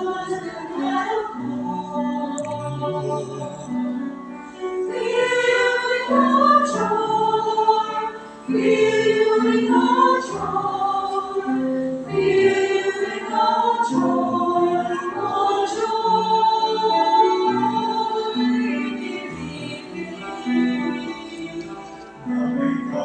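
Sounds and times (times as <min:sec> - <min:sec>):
mixed choir singing: 0:00.0 - 0:23.0.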